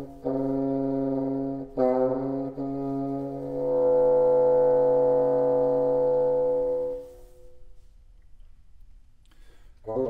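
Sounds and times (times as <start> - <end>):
bassoon holding long note: 0.0 - 7.8.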